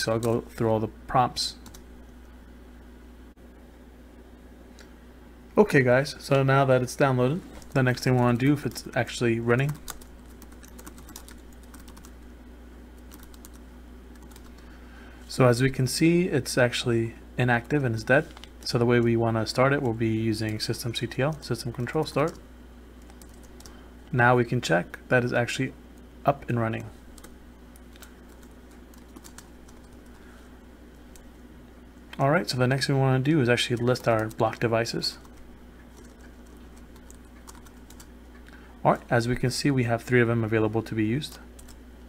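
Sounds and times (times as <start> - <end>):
low steady hum: 0.0 - 42.0
keyboard keys clicking: 9.7 - 12.1.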